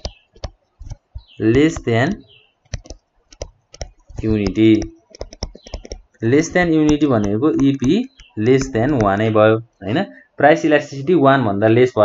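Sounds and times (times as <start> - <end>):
stylus tapping on tablet: 0.0 - 9.4.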